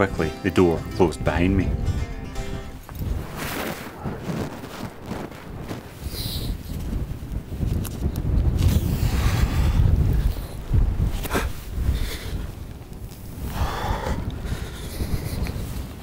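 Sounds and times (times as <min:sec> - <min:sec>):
quiet background music: 0:00.0 - 0:02.9
wind buffeting microphone: 0:00.0 - 0:16.0.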